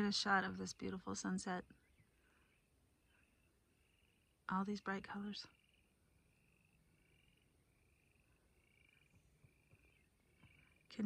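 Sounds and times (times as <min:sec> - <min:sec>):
frogs croaking: 0:01.9 - 0:11.0.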